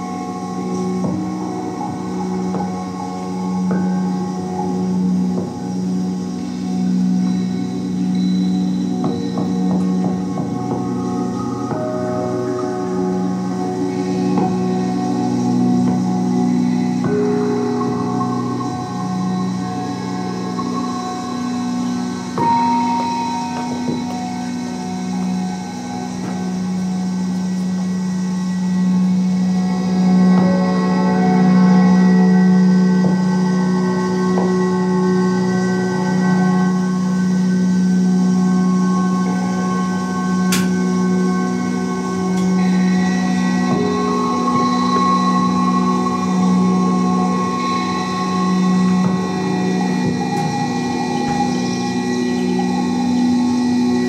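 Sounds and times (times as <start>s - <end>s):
low drone hum: 0.0s - 54.0s
sustained bell-like tones: 0.0s - 54.0s.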